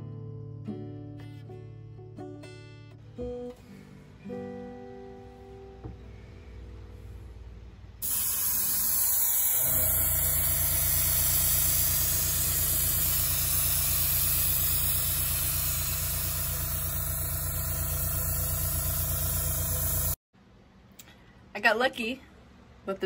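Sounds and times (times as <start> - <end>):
air compressor motor hum: 6.9 - 20.2
airbrush spraying air hiss: 8.0 - 20.2.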